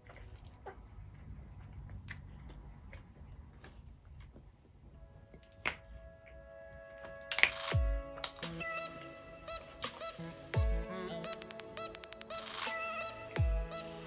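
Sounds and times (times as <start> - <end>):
background music with held notes: 4.9 - 14.0.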